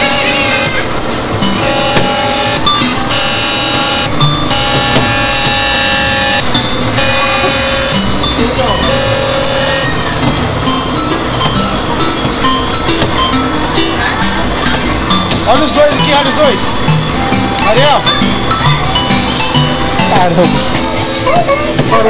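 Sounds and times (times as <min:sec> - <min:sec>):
electronic ride jingle: 0:00.0 - 0:22.0.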